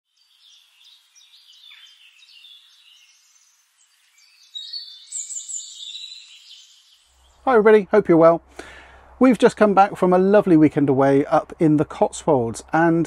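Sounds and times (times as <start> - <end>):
birds singing: 0.1 - 9.2.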